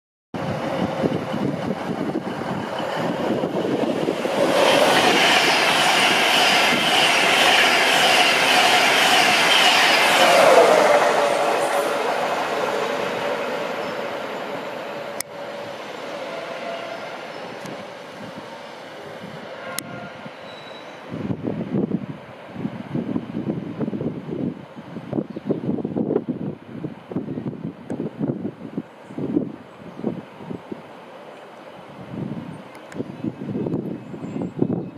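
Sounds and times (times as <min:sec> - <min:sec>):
train passing at speed: 0:00.4 - 0:34.9.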